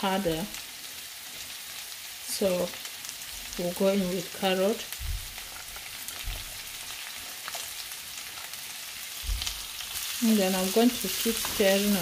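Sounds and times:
onions sizzling in oil: 0.0 - 12.0
dull low bumps: 5.0 - 5.6, 6.2 - 6.6, 9.2 - 9.6.

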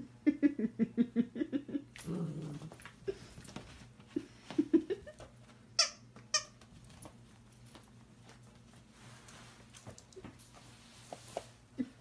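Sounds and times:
toy squeaks: 5.8 - 6.6.

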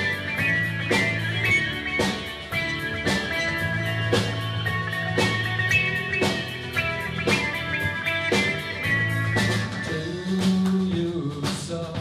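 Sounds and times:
bass: 0.0 - 12.0
drums: 0.0 - 12.0
electric guitars: 0.0 - 12.0.

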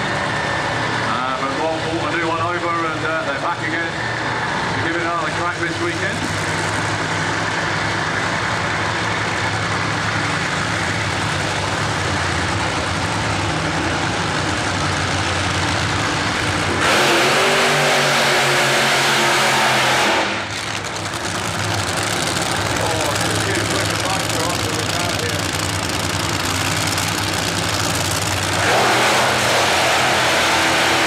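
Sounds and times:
drag racing engines: 0.0 - 31.0.

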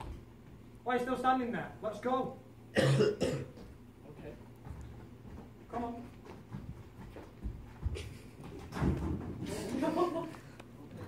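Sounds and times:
man coughing: 2.8 - 3.6.

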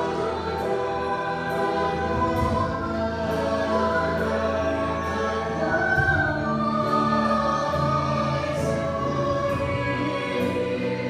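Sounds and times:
choir singing held notes: 0.0 - 11.0.

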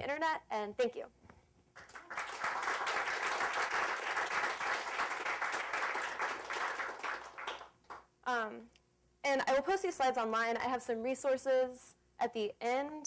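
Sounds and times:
audience applauding: 1.8 - 8.0.

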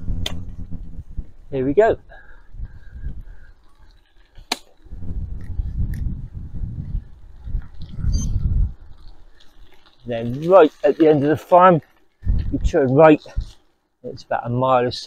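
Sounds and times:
wind buffeting microphone: 0.0 - 4.0, 4.8 - 10.4, 12.2 - 13.6.

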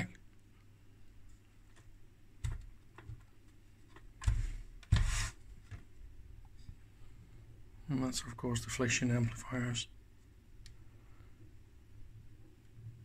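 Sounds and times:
rustling scrapes: 4.3 - 5.8.

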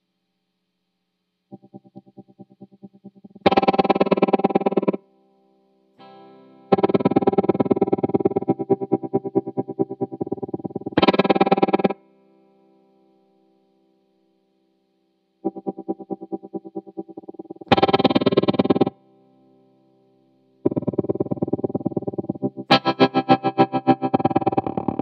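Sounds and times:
pulsing overdriven electric guitar: 1.5 - 5.0, 6.0 - 12.0, 15.5 - 19.0, 20.6 - 25.0.

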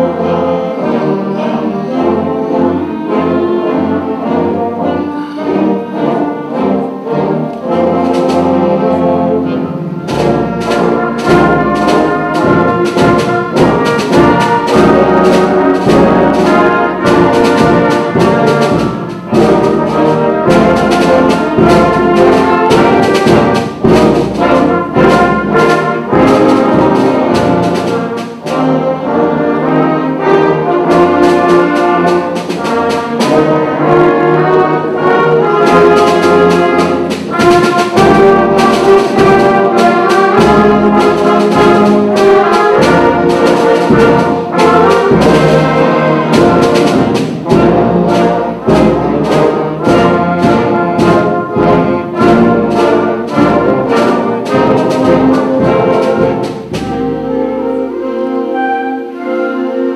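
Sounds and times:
concert band playing a march: 0.0 - 59.9
sharp drum strokes: 7.6 - 58.0.

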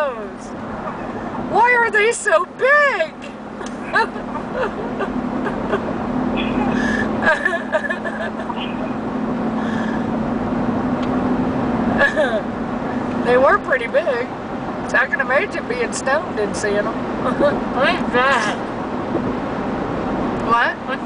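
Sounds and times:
road and engine drone in car: 0.0 - 21.0.

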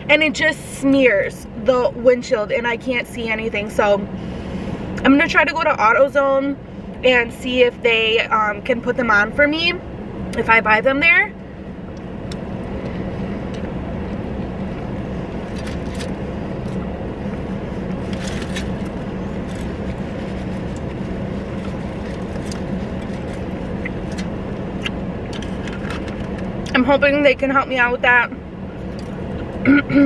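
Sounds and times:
car engine and ventilation hum: 0.0 - 30.0.

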